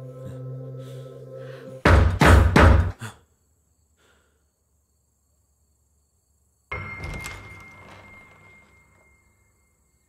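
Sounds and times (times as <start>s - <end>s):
soft droning music: 0.0s - 1.9s.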